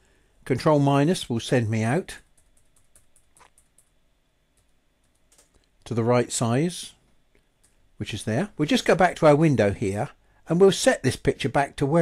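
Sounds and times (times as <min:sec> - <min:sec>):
computer keyboard keys clicking: 0:02.3 - 0:03.9, 0:04.6 - 0:05.7.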